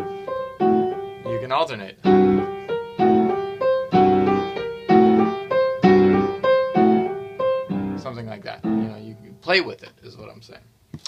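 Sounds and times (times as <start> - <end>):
piano playing blues lick: 0.0 - 9.6.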